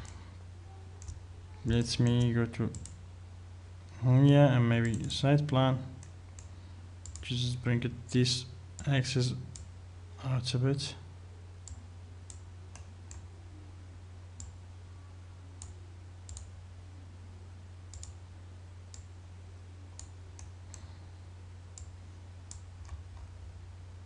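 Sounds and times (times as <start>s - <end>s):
computer mouse clicking: 4.8s - 5.1s, 6.0s - 7.3s, 15.6s - 16.5s, 17.9s - 18.2s, 20.0s - 20.8s, 22.5s - 23.3s.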